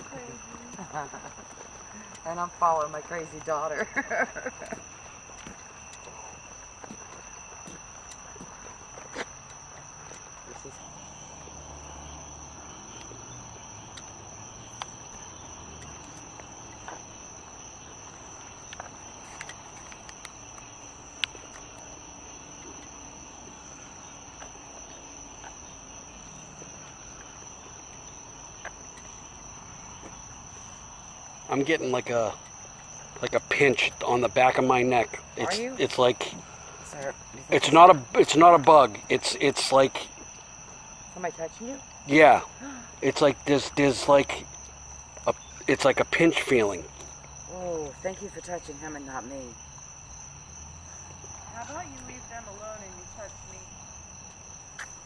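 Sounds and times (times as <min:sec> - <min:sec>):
footsteps on pavement: 0:00.0 - 0:55.0
night insects trilling: 0:00.0 - 0:55.0.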